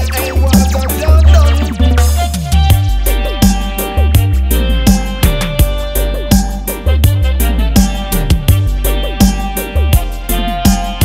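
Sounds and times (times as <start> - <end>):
heavy bassline: 0.0 - 11.0
reggae instrumental: 0.0 - 11.0.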